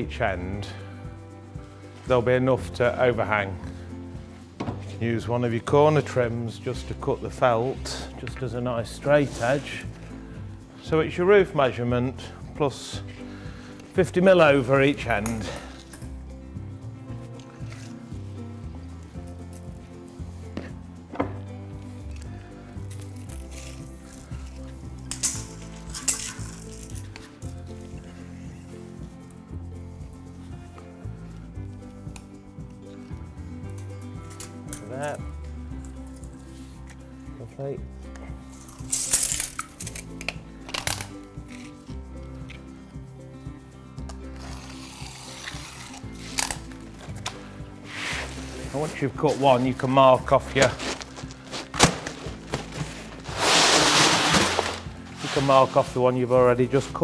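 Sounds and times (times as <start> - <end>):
background music with steady chords: 0.0 - 57.0
knife cutting roofing felt: 44.4 - 46.7.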